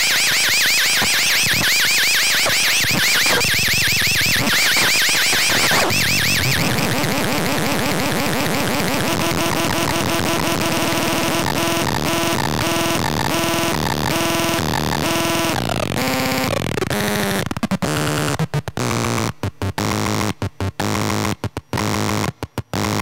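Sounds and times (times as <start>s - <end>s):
harsh noisy electronic drone: 0.0s - 23.0s.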